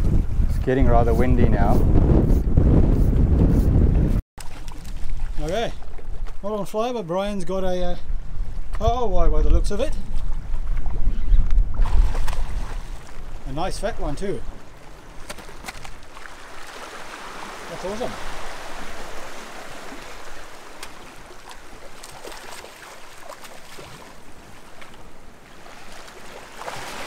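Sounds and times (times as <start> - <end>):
wind buffeting microphone: 0.0 - 4.2, 7.4 - 15.2
water splashing from thrashing fish: 19.4 - 24.1, 25.6 - 27.0.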